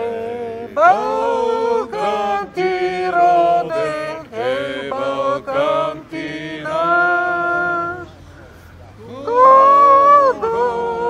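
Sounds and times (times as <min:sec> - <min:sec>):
woman chanting through megaphone: 0:00.7 - 0:08.2, 0:09.2 - 0:11.0.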